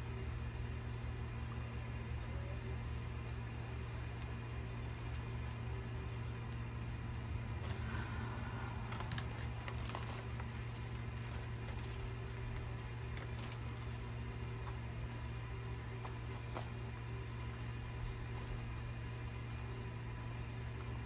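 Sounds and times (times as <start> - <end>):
low machine hum: 0.0 - 21.0
plastic pot and soil rustling: 1.3 - 21.0.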